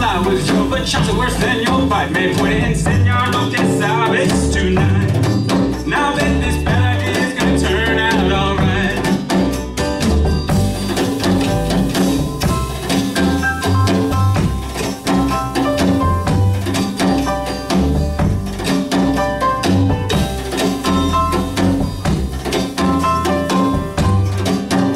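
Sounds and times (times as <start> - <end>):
man singing: 0.0 - 9.4
acoustic guitar: 0.0 - 24.9
piano: 0.0 - 24.9
small live band playing: 0.0 - 24.9
upright bass: 0.0 - 24.9
drum and cymbal strokes: 10.4 - 24.9.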